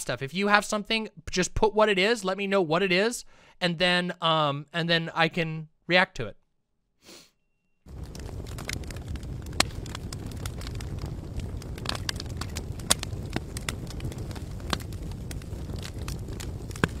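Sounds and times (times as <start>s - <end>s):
fire crackles and pops: 7.9s - 17.0s
low rumble of flames: 7.9s - 17.0s.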